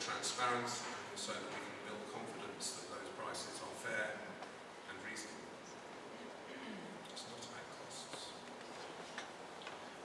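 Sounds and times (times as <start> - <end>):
low room hiss: 0.0 - 10.0.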